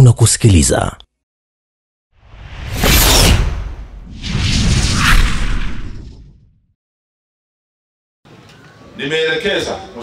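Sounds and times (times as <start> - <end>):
whoosh sound effect: 2.2 - 6.5.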